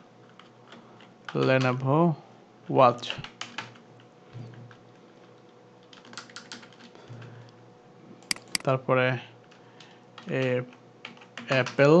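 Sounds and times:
computer keyboard keystrokes: 3.2 - 3.8, 5.8 - 7.0, 8.3 - 8.7, 9.8 - 11.8.

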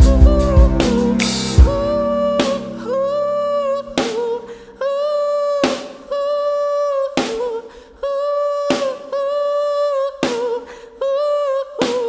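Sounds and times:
person singing long notes: 0.0 - 12.0.

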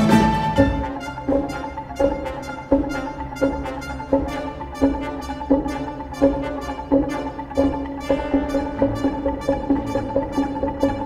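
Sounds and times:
sustained orchestral music: 0.0 - 11.0
wooden poles striking with ringing tone: 0.6 - 11.0.

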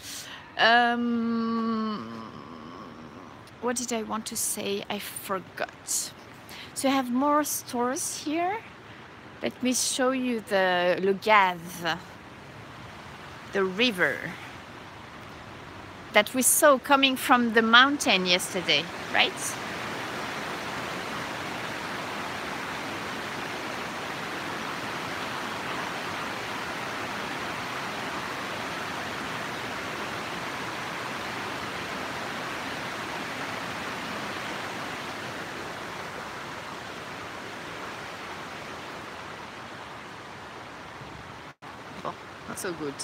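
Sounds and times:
river rushing over rocks: 10.4 - 43.0.

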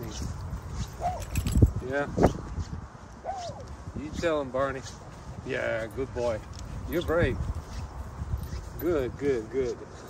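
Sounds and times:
dog barking and yelping: 1.0 - 1.3.

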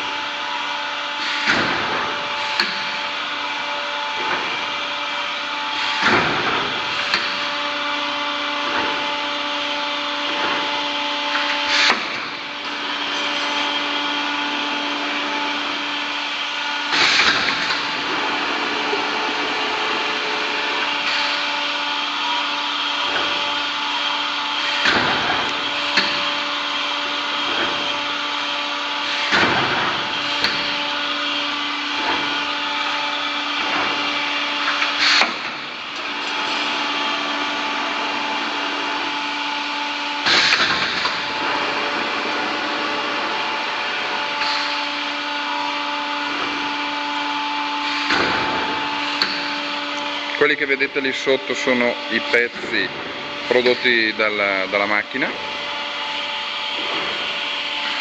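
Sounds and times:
machine mechanical hum: 0.0 - 58.0.

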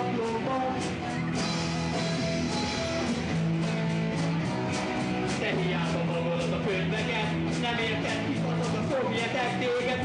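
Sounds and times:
bass guitar: 0.0 - 10.0
distorted electric guitar chords: 0.0 - 10.0
drum beat with cymbal hits: 0.0 - 10.0.

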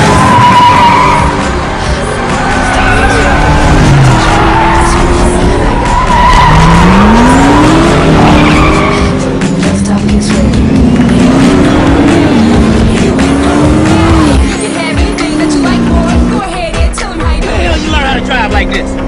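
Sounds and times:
sports car engines racing: 0.0 - 16.8, 17.4 - 19.0
music: 0.0 - 19.0
tyre squeal: 5.7 - 9.2.

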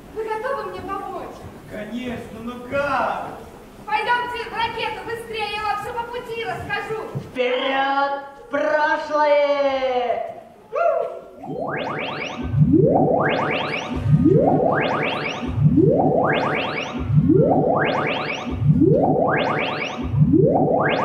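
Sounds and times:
rising electronic sweep: 11.4 - 21.0.

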